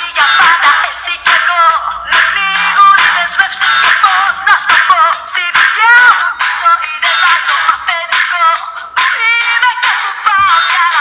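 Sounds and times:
instrumental backing music: 0.0s - 11.0s
woman singing: 0.0s - 11.0s.

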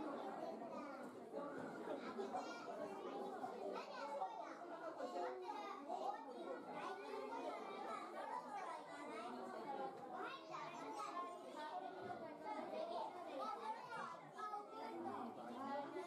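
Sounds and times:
crowd chatter with children: 0.0s - 16.0s.

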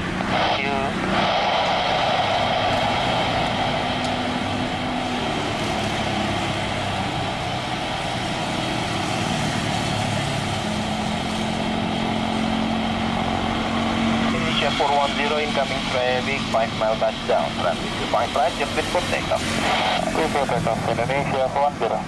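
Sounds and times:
jet engines idling: 0.0s - 22.0s.

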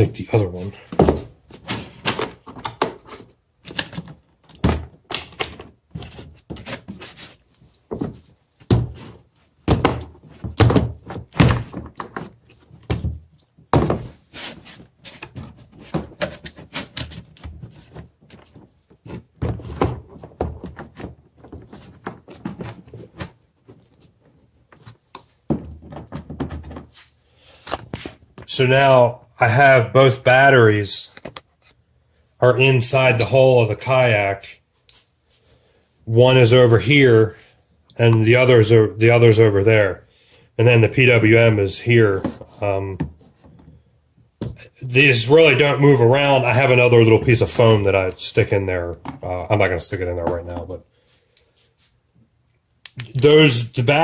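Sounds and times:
battery thunks and scraping: 24.7s - 27.0s.

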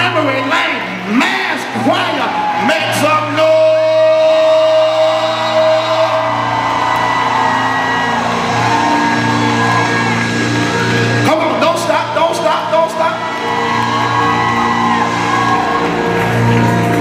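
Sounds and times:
keyboard sustained chords: 0.0s - 17.0s.

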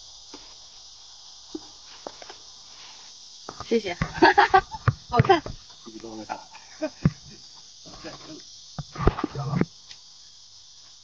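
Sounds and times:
insect chorus buzzing: 0.0s - 11.0s.

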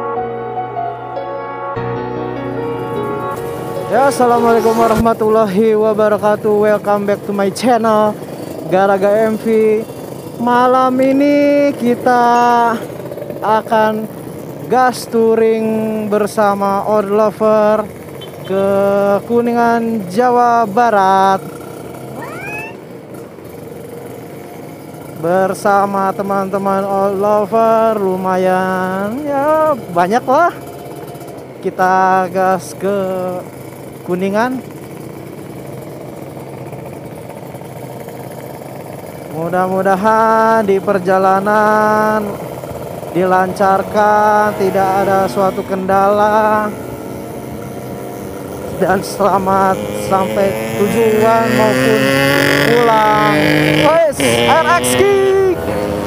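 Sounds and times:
road noise: 0.0s - 56.0s
motorcycle engine running: 2.8s - 56.0s.

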